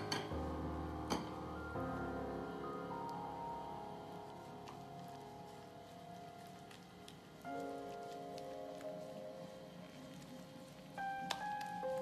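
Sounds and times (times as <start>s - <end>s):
gloved hands kneading dough: 0.0s - 12.0s
soft background music: 0.0s - 12.0s.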